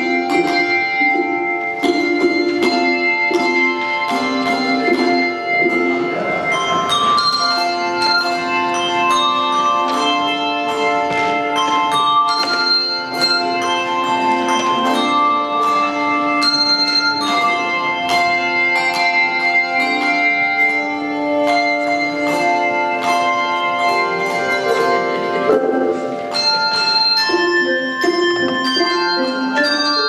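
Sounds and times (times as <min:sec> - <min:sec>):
handbell choir playing chords: 0:00.0 - 0:30.0.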